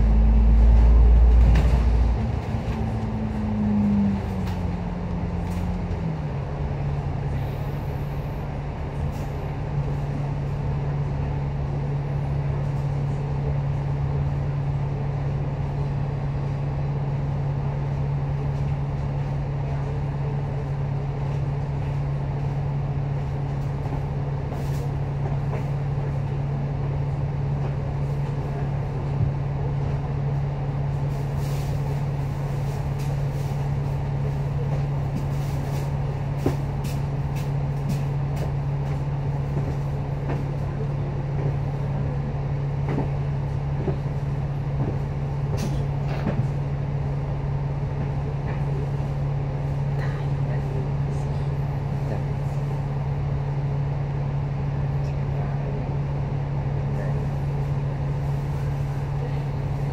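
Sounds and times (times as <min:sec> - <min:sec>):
bus diesel engine: 0:00.0 - 0:59.9.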